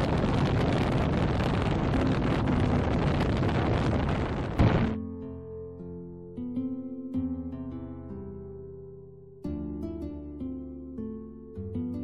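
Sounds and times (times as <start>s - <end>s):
wind on microphone: 0.0s - 5.0s
plucked harp-like music: 5.0s - 12.0s.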